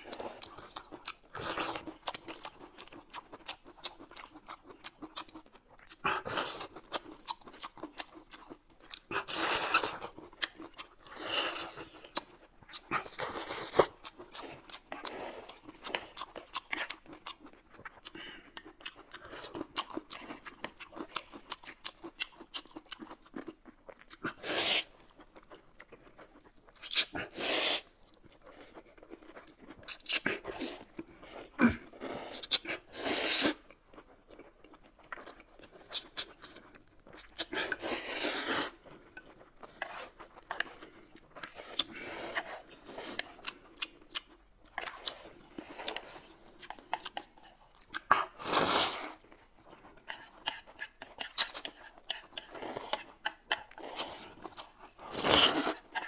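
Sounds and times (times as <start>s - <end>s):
chewing and crisp bites: 0.0s - 56.0s
noodles slurped: 24.2s - 25.0s, 27.1s - 27.9s, 30.1s - 33.7s, 37.3s - 43.8s
slurping noodles: 24.3s - 25.0s, 27.1s - 27.9s, 31.9s - 33.6s, 37.5s - 38.8s, 48.2s - 49.2s, 53.8s - 56.0s.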